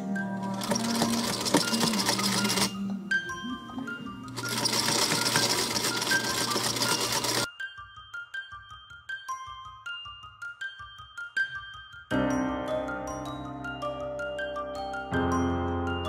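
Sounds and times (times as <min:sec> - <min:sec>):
sewing machine stitching: 0:00.4 - 0:02.8, 0:04.3 - 0:07.5.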